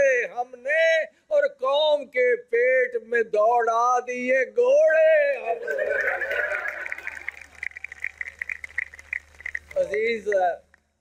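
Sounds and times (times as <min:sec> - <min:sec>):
low electrical hum: 0:05.3 - 0:11.0
audience clapping: 0:05.4 - 0:10.9.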